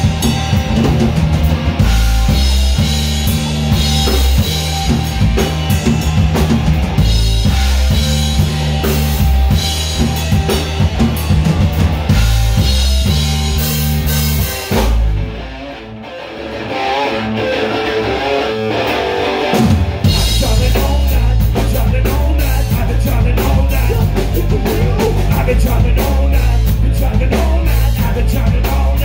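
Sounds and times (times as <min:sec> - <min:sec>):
drum kit: 0:00.0 - 0:15.7, 0:17.4 - 0:29.0
bass guitar: 0:00.0 - 0:29.0
electric guitar: 0:00.0 - 0:29.0.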